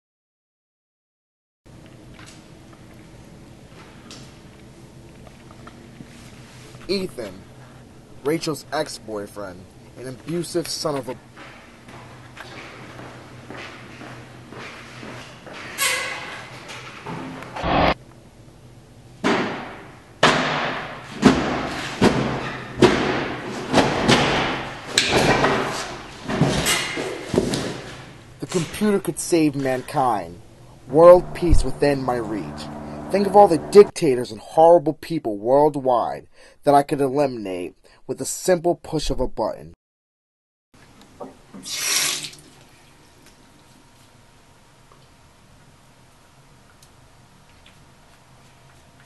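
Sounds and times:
heavy thuds in tiled room: 19.2s - 25.6s
water gushing from sink tap: 41.7s - 42.4s.

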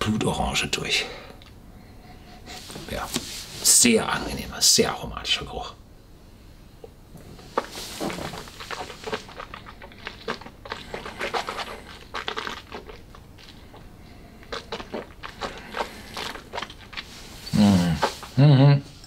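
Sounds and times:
wet mouth sounds: 7.4s - 18.6s.

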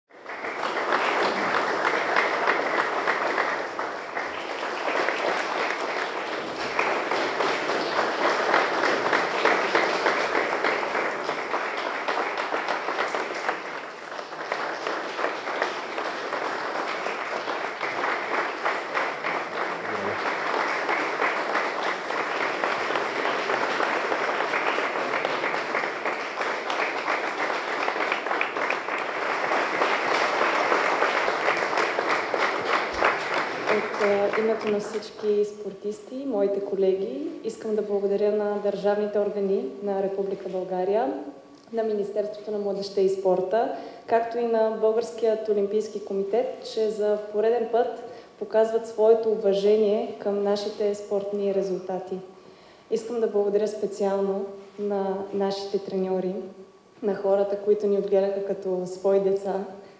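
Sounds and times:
audience applauding: 0.1s - 35.0s.

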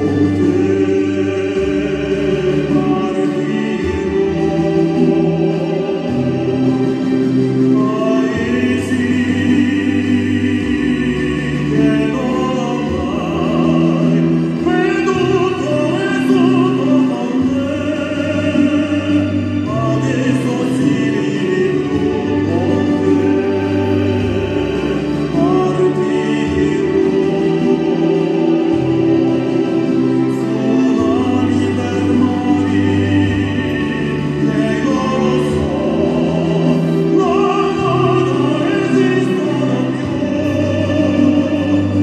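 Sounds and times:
instrumental accompaniment: 0.0s - 42.0s
male opera singer: 0.0s - 42.0s.

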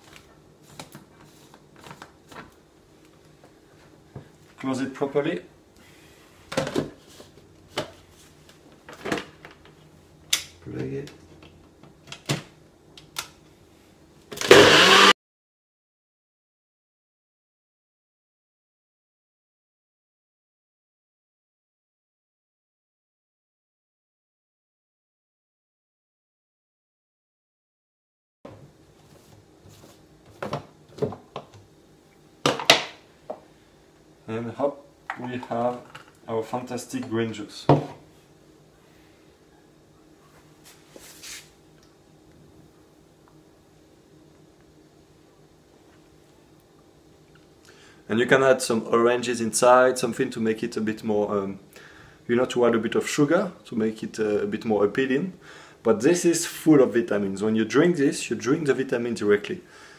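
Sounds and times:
blender motor running: 14.4s - 15.2s.

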